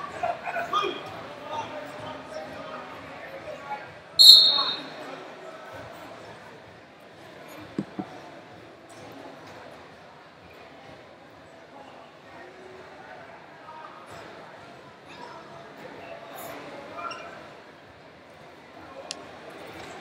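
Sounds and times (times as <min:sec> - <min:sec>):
crowd chatter echoing in a gym: 0:00.0 - 0:20.0
shrill high-pitched blast: 0:04.2 - 0:05.0.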